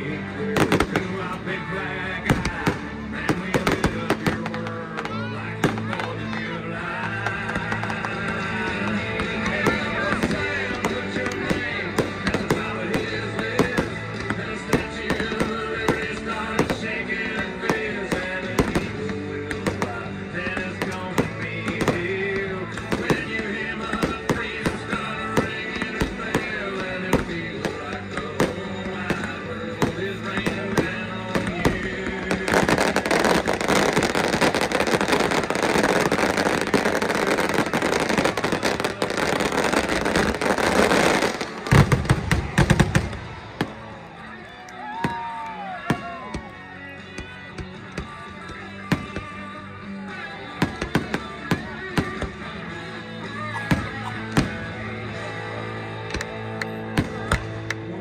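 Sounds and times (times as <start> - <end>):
music: 0.0 - 58.0
fireworks bursting: 0.2 - 44.2.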